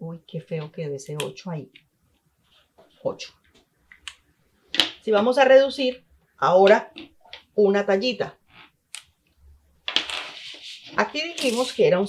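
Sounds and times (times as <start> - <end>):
plastic ruler scraping across paper: 10.1 - 11.8.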